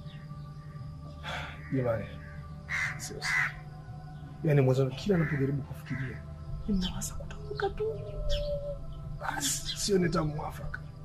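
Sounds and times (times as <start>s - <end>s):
crow cawing: 1.3s - 3.8s, 5.0s - 6.3s.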